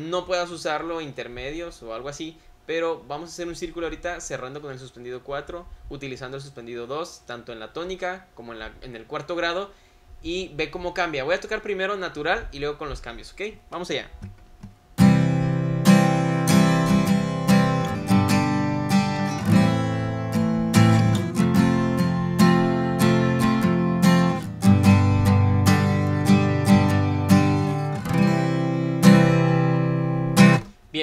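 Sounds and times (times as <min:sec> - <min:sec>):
acoustic guitar strumming chords: 0:14.6 - 0:30.8.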